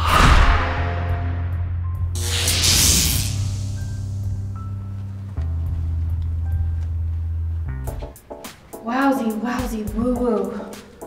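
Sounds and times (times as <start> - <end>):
hissing teleport whoosh: 0.0 - 0.9, 2.2 - 4.1
background music with low notes: 0.1 - 11.0.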